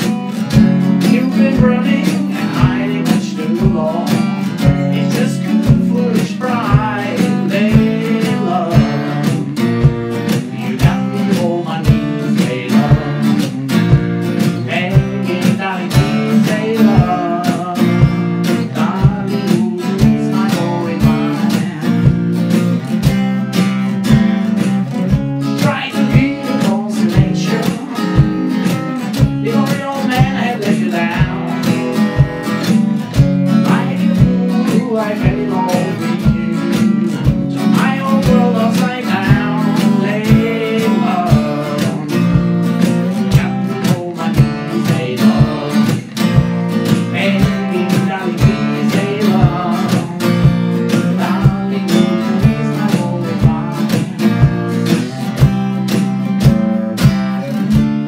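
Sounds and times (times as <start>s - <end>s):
acoustic guitar strummed: 0.0s - 58.0s.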